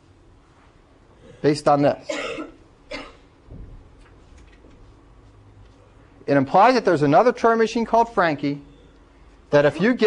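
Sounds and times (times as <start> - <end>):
person coughing: 2.0 - 3.3
faint low thump: 3.5 - 3.9.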